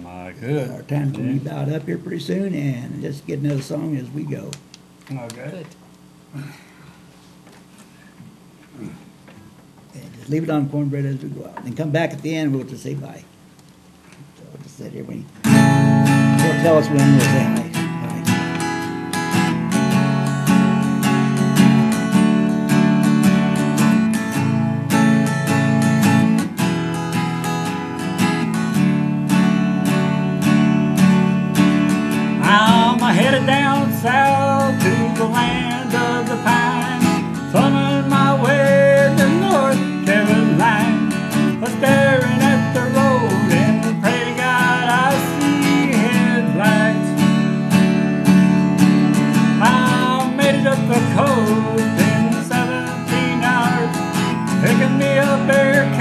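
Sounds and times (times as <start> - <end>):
acoustic guitar strumming: 0.0 - 4.5, 15.4 - 56.0
man singing: 1.1 - 1.7, 16.4 - 18.2, 32.4 - 47.2, 49.5 - 56.0.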